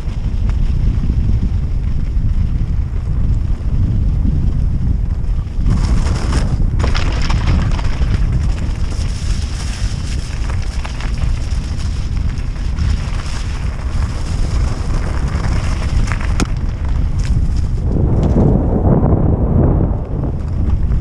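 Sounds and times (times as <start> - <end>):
wind rumbling on microphone: 0.0 - 21.0
tyres crunching on gravel: 5.7 - 18.4.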